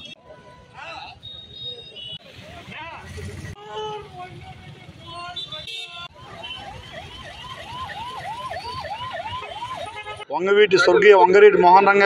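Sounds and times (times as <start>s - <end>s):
electronic siren rising sweeps: 6.8s - 9.9s.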